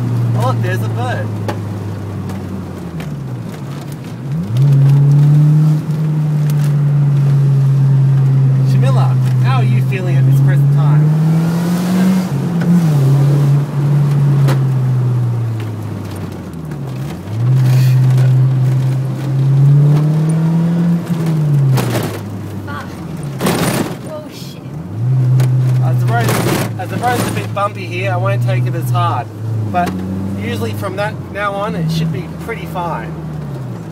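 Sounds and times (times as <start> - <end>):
car engine revving: 0.0 - 33.9.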